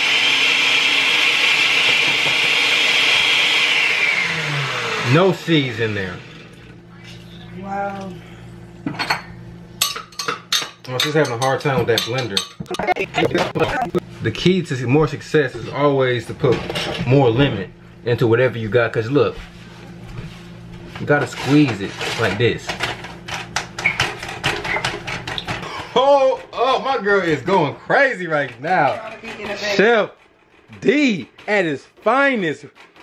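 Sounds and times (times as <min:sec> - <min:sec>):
stick blender humming: 0:00.0 - 0:08.9, 0:10.8 - 0:33.0
blender knocking in bowl: 0:01.5 - 0:03.4.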